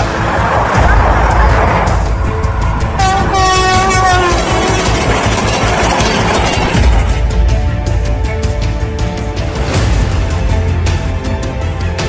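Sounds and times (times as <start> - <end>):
train passing at speed: 0.0 - 8.2
train horn: 2.8 - 5.7.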